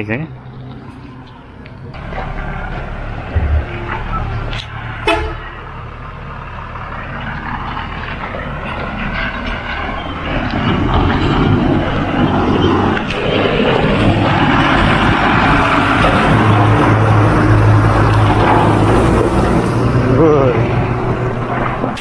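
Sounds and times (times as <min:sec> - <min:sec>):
truck engine rumbling: 0:00.0 - 0:22.0.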